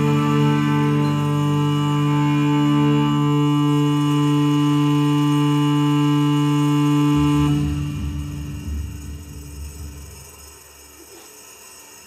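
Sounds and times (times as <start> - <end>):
droning chord from violin guitar and drums: 0.0 - 11.0
low hum: 0.0 - 12.0.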